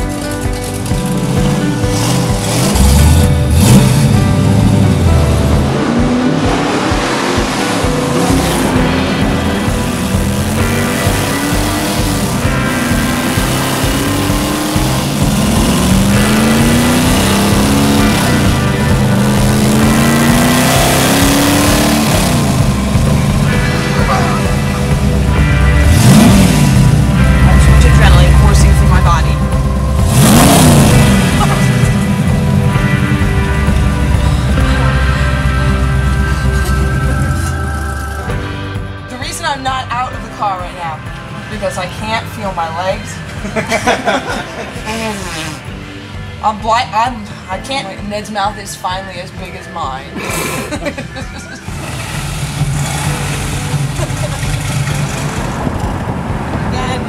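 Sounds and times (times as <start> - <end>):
car engine accelerating through gears: 0.0 - 39.0, 43.2 - 46.4, 50.1 - 57.0
engine revving: 0.0 - 57.0
deep engine idle rumble: 22.0 - 38.5.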